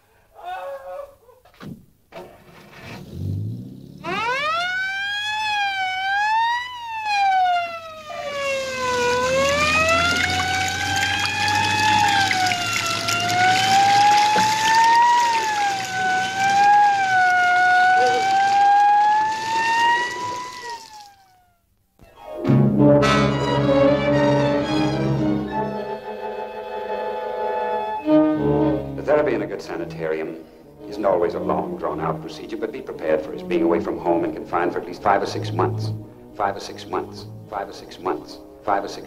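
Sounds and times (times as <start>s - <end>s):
emergency vehicle siren wailing: 3.3s - 29.1s, 30.7s - 38.7s.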